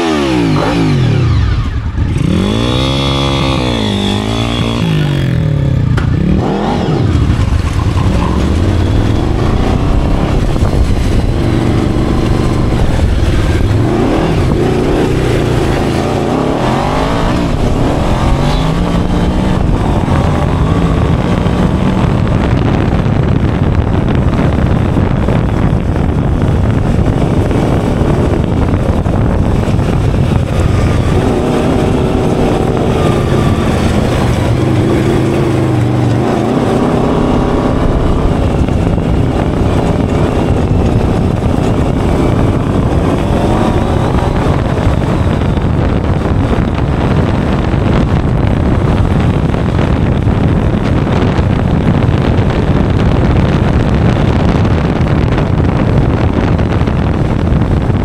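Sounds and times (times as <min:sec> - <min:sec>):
buggy engine revving: 0:00.0 - 0:58.0.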